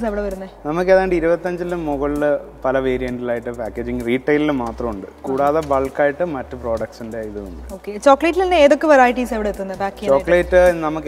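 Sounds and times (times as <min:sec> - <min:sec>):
man speaking: 0:00.6 - 0:07.7, 0:10.0 - 0:11.0.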